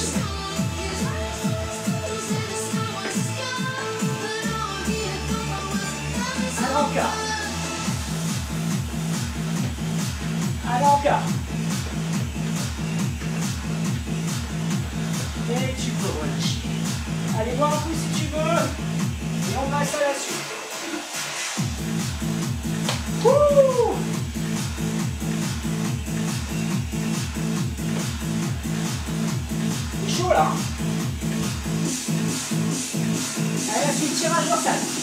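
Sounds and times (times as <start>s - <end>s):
electronic workout music: 0.0s - 35.0s.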